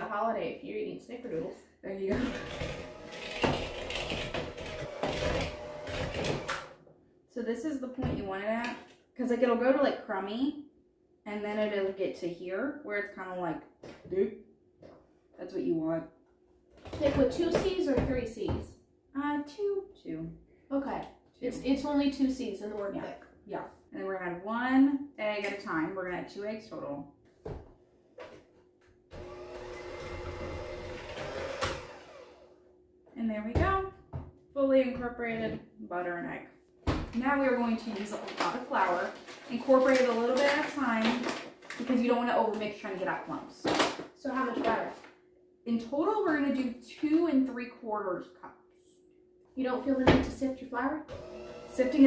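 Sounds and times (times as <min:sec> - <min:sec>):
electric hand mixer running: 0:02.2 - 0:06.8, 0:29.1 - 0:32.6, 0:51.1 - 0:52.0.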